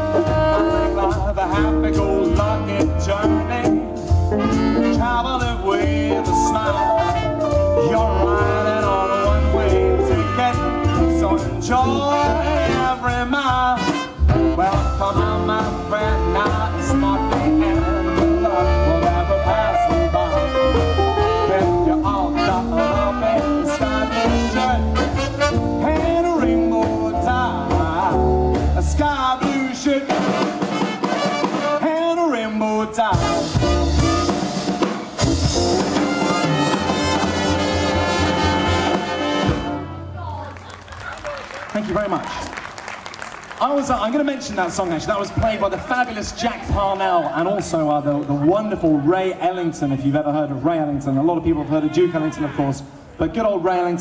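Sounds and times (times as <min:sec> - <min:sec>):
trumpet lead: 0:00.0 - 0:43.0
swing band playing: 0:00.0 - 0:54.0.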